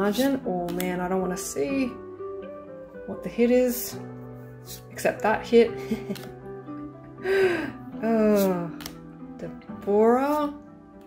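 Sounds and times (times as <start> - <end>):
soft background music: 0.0 - 11.0
woman laughing breathily: 5.8 - 6.3, 7.1 - 7.9.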